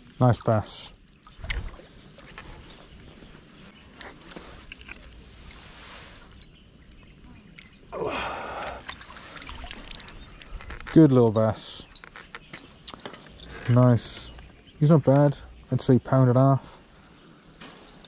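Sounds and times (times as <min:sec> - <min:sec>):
water splashing and sloshing: 0:00.0 - 0:11.4.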